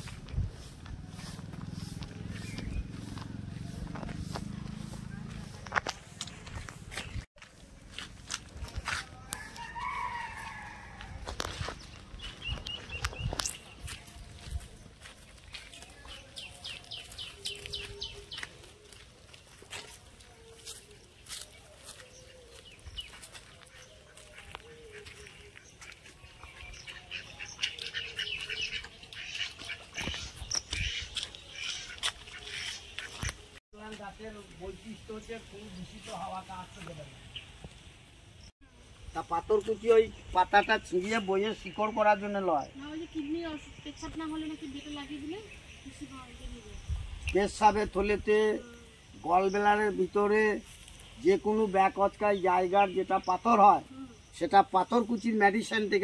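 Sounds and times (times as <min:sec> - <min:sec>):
rooster crowing: 0:09.2 - 0:11.3
ducks quacking: 0:23.7 - 0:33.4.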